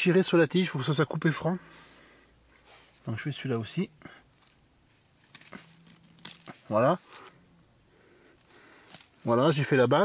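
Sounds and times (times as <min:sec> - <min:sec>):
plant leaves rustling: 0:04.3 - 0:07.3, 0:08.3 - 0:09.8.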